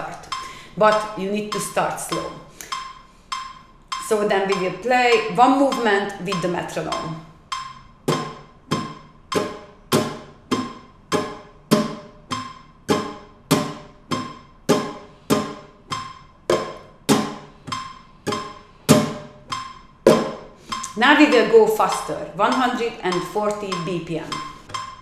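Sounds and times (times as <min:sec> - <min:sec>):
guitar strums: 0:00.0 - 0:25.0
metronome beeping: 0:00.0 - 0:25.0.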